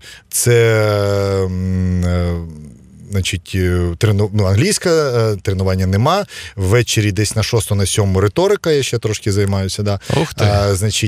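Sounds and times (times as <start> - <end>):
man's drawn-out hesitation sound: 10.0 - 10.9.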